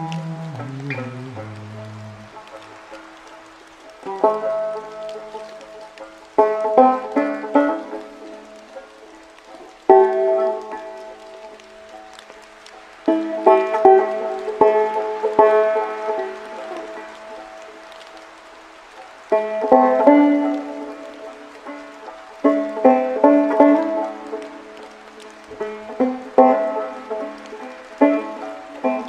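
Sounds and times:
banjo plucked slowly: 0:00.0 - 0:29.0
faint rain hiss: 0:00.0 - 0:29.0.

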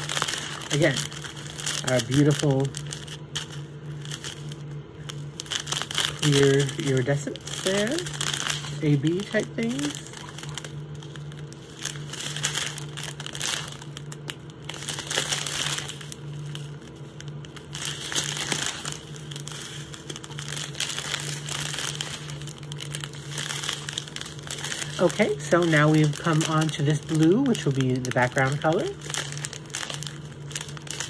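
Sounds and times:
plastic bags crinkling: 0:00.0 - 0:31.0
steady low hum: 0:00.0 - 0:31.0.

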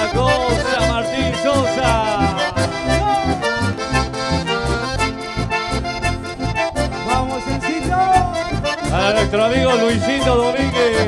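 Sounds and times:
accordion and bandoneon melody: 0:00.0 - 0:11.0
bass beat: 0:00.0 - 0:11.0
guitar: 0:00.0 - 0:11.0.

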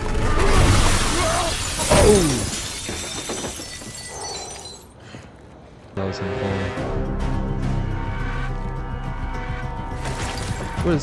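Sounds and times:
glass shattering: 0:00.7 - 0:04.9, 0:10.0 - 0:10.7.

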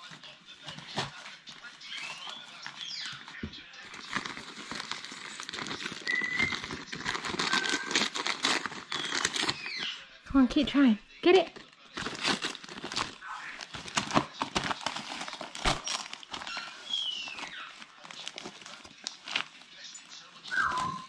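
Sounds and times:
wrapping paper crinkling: 0:00.0 - 0:10.1, 0:11.5 - 0:21.0.

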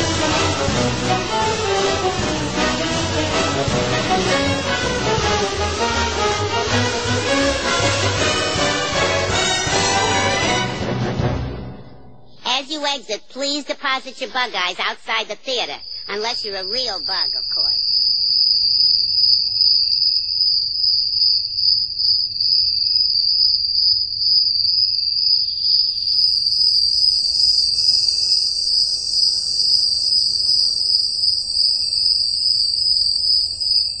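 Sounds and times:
higher cricket trill: 0:11.7 - 0:34.0
crickets trilling: 0:12.6 - 0:34.0.

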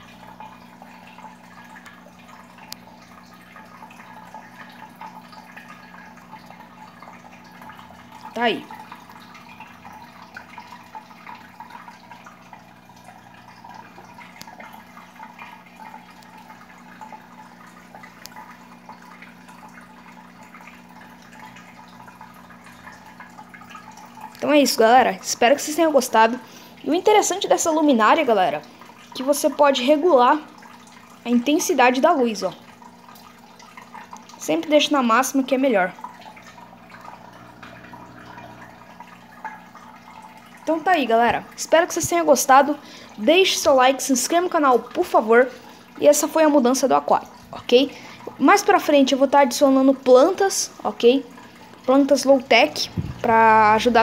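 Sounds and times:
low steady hum: 0:00.0 - 0:54.0
water trickling into tank: 0:00.0 - 0:54.0.

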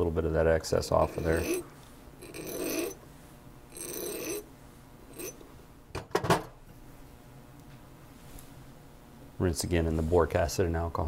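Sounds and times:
hand file rasping on metal: 0:00.9 - 0:03.0, 0:03.8 - 0:04.5, 0:05.1 - 0:05.4.

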